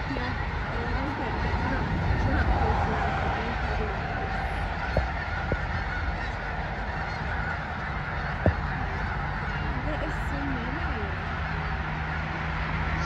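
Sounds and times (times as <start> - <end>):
geese honking: 0.0 - 13.0
low thumps: 4.7 - 5.7, 8.3 - 9.1.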